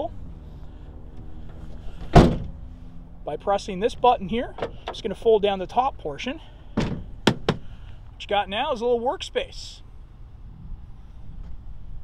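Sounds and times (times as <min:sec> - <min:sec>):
wind rumble on microphone: 0:10.2 - 0:12.0.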